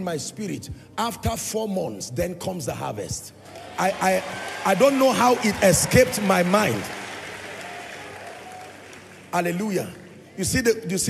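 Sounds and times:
congregation applauding: 3.4s - 10.6s.

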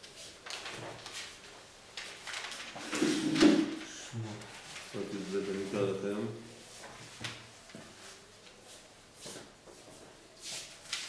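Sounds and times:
book pages rustling: 0.0s - 5.8s, 6.7s - 11.0s.

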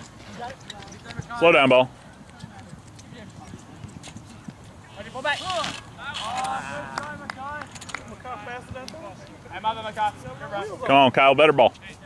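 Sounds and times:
people shouting: 5.5s - 7.2s.

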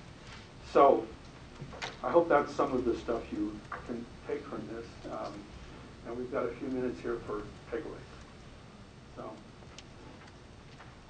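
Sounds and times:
faint clicks: 9.2s - 11.0s.

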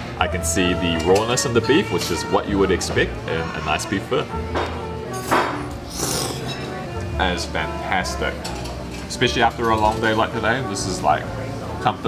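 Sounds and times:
background music: 0.0s - 12.0s
person slurping noodles: 5.9s - 6.7s.

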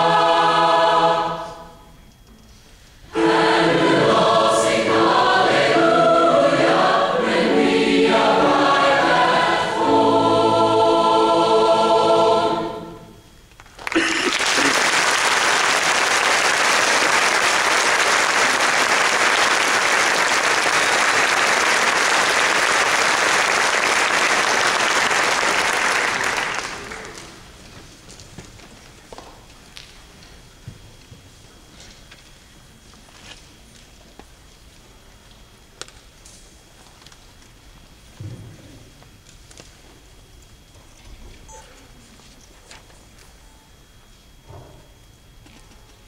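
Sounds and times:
large choir singing: 0.0s - 1.9s, 3.0s - 13.4s
audience applauding: 13.6s - 27.5s.

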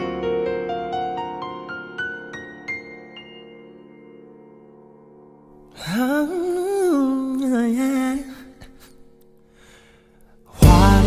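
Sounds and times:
faint sustained backing music: 10.6s - 11.0s.

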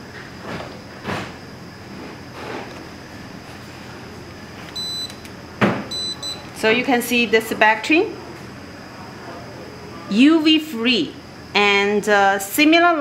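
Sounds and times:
faint steady high whine: 0.0s - 13.0s.

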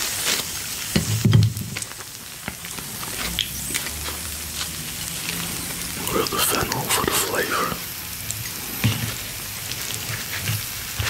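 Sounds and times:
food sizzling on grill plate: 0.0s - 11.0s.

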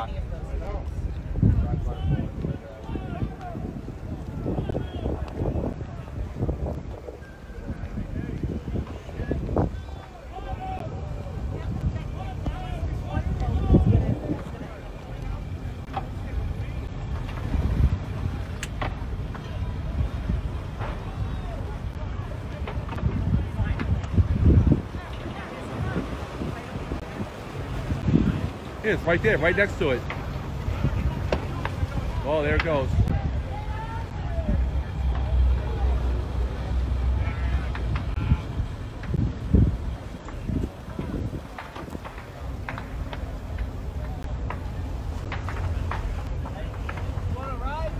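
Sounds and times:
outboard boat engines idling: 0.0s - 47.9s
people talking indistinctly: 0.0s - 47.9s
steady low rumble: 0.0s - 47.9s.

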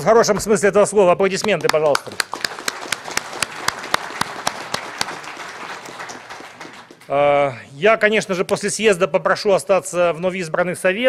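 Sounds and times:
close hand claps: 1.4s - 7.2s
audience applauding: 1.4s - 7.5s.

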